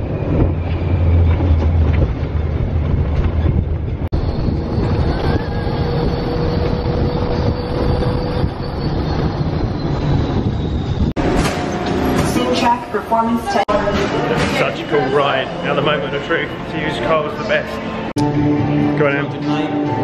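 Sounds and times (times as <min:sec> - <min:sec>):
wind rush: 0:00.0 - 0:13.8
low rumble of ride vehicle: 0:00.0 - 0:18.1.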